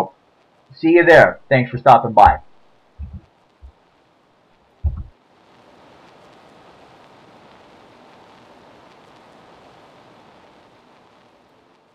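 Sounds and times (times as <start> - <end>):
steady hiss: 0.0 - 11.9
short thump: 2.2 - 3.2, 4.8 - 5.1.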